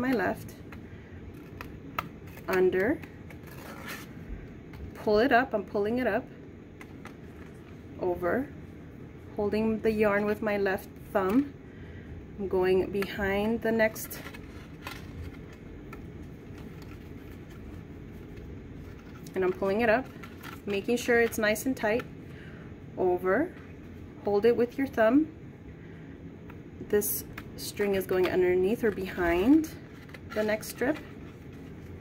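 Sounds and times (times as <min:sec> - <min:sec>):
low room hum: 0:00.0 - 0:32.0
faint paper rustling: 0:00.5 - 0:05.0, 0:06.8 - 0:07.8, 0:13.9 - 0:22.5, 0:27.2 - 0:32.0
yarn scraping and rustling: 0:01.3 - 0:04.4, 0:27.4 - 0:32.0.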